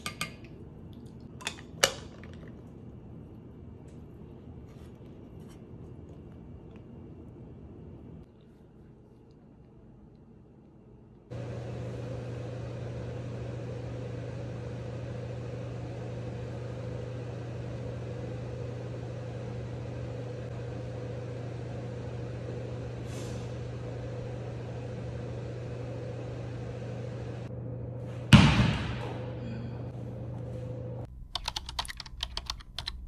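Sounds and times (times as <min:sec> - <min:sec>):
low mechanical hum: 0:00.0 - 0:33.0.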